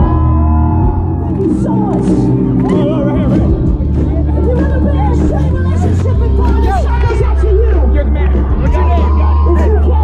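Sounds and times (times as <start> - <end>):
crowd chatter and shouting: 0.0 - 10.0
live pop-punk band: 0.0 - 10.0.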